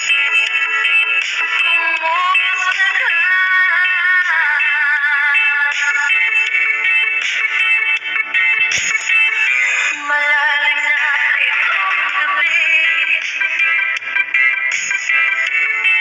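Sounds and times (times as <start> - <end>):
music with singing: 0.0 - 16.0.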